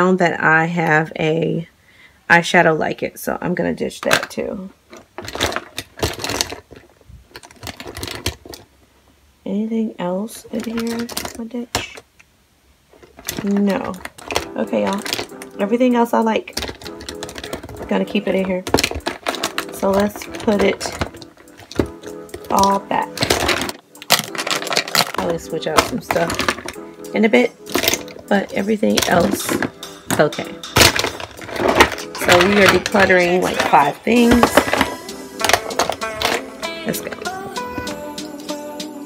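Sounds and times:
plastic cosmetics clattering: 3.6 - 9.0, 10.2 - 12.3, 12.9 - 38.2
plastic makeup items clicking: 4.0 - 8.7, 10.5 - 12.3, 13.0 - 38.0.

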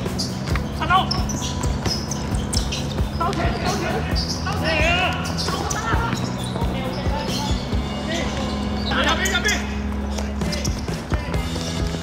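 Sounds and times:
players shouting: 0.1 - 12.0
football kicked and bouncing: 0.4 - 3.6.

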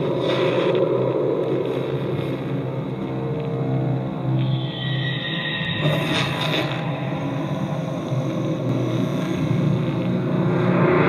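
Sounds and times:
low rumbling ambient drone: 0.0 - 11.0.

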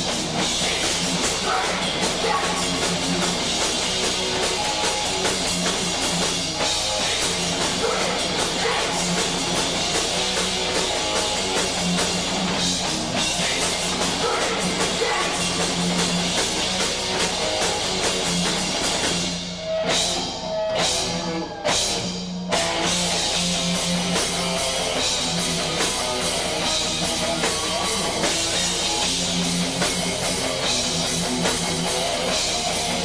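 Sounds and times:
heavy metal band playing: 0.0 - 33.0.

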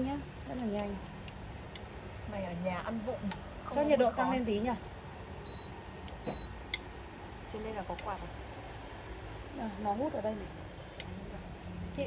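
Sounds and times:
short high beeps: 5.5 - 6.5.

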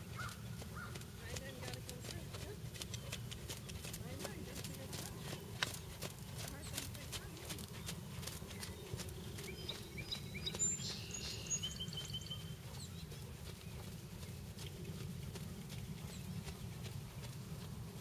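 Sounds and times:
horse hoofbeats on sand: 0.0 - 18.0
low background rumble: 0.0 - 18.0
bird chirping: 0.1 - 14.3.

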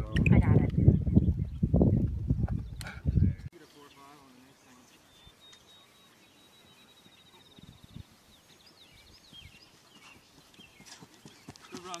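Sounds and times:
dull low thuds: 0.0 - 3.5
songbirds chirping: 0.0 - 12.0.

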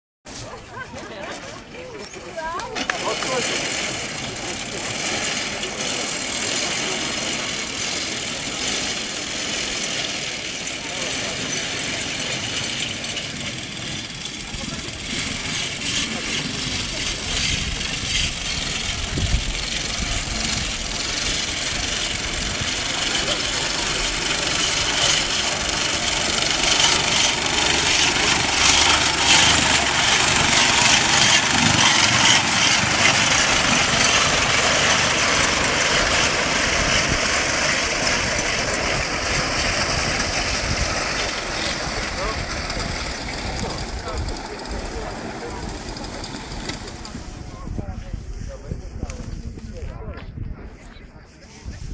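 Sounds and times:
mower cutter bar clattering: 1.3 - 47.4.

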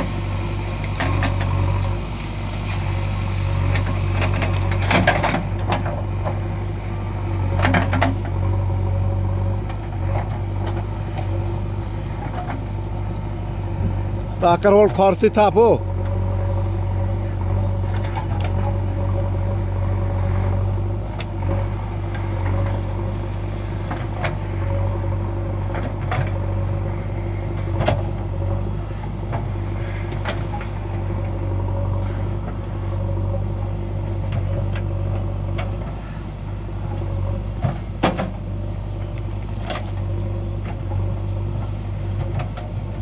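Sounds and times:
diesel engine humming: 0.0 - 43.0.

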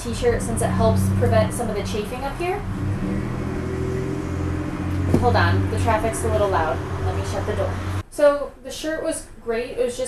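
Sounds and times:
vehicle engine rumbling: 0.0 - 8.0.

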